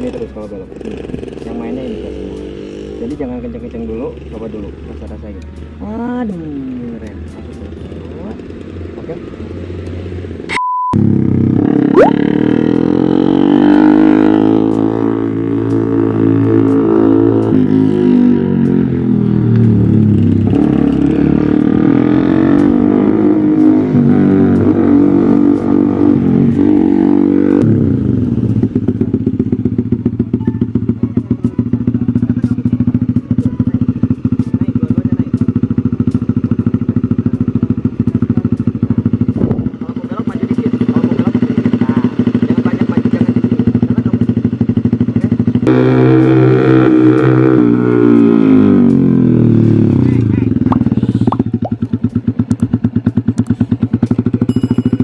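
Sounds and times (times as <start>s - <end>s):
small motorcycle engine: 0.0s - 4.9s, 11.0s - 55.0s.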